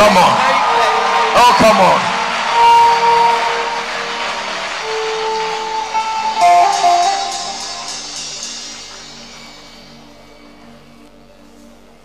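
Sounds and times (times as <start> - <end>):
worship band music: 0.0 - 11.7
electric guitar long held notes: 0.0 - 12.0.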